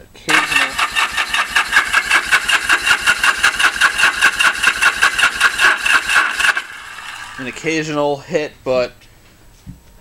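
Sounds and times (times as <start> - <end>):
motorcycle engine cranking: 0.3 - 7.8.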